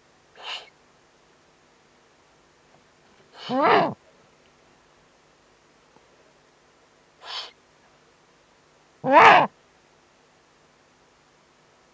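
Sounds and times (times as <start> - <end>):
owl harsh wavering call: 0.4 - 0.7, 3.4 - 4.0, 7.2 - 7.6, 9.0 - 9.5
owl hissing: 0.4 - 0.8, 3.4 - 4.0, 7.2 - 7.6, 9.0 - 9.5.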